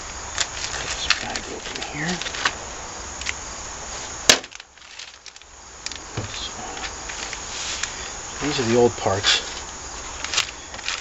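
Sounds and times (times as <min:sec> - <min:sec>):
plastic bag handling: 0:00.3 - 0:02.6, 0:04.4 - 0:07.9, 0:09.4 - 0:11.0.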